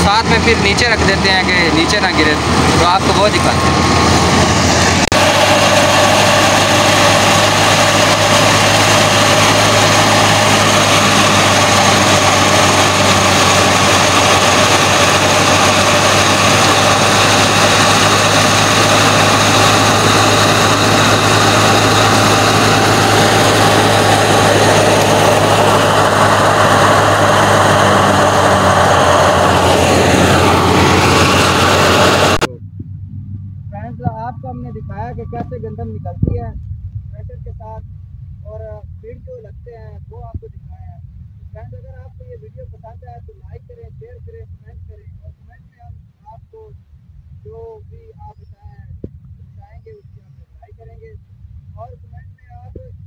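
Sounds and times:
thresher machine drone: 0.0s - 39.5s
grain pouring from chute: 4.2s - 32.5s.

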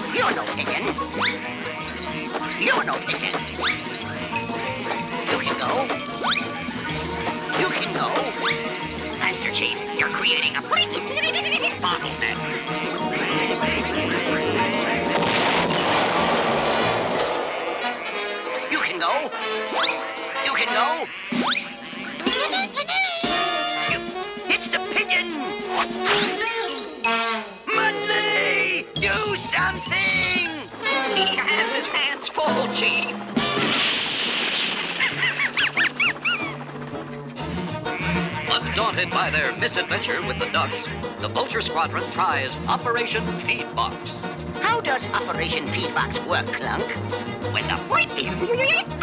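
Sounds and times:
birds squawking: 0.0s - 15.2s, 17.2s - 26.2s, 34.8s - 41.2s
rapid rattling commotion: 0.0s - 18.7s, 29.0s - 38.5s
cartoon background music: 0.0s - 49.0s
cartoon duck honks: 38.0s - 40.9s.

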